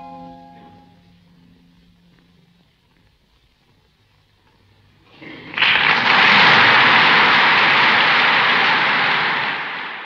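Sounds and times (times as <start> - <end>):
audience applause: 5.1 - 10.0.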